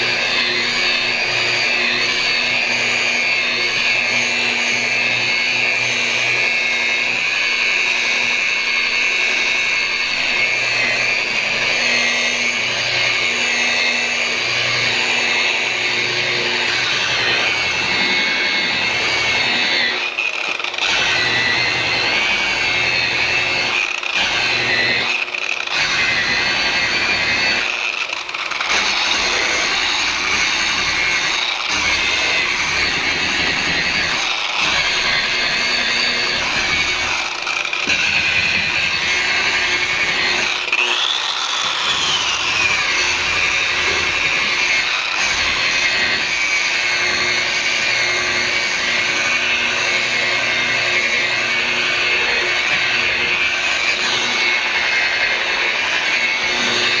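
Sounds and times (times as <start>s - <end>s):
rotary polisher motor whine: 0.0s - 57.0s.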